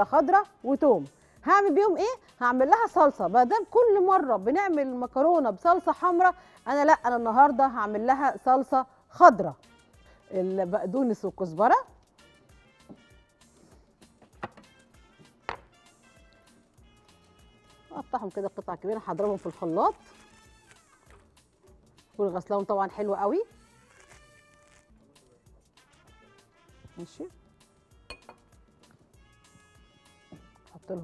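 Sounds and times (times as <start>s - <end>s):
background music with beat: 9.4s - 18.8s, 20.2s - 31.0s
glass knocking on counter: 15.5s - 15.7s, 28.1s - 28.5s
glass clinking: 28.1s - 28.6s.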